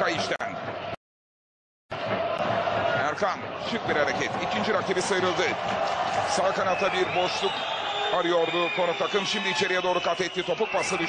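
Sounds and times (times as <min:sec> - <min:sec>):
stadium crowd noise: 0:00.0 - 0:01.0, 0:01.9 - 0:11.0.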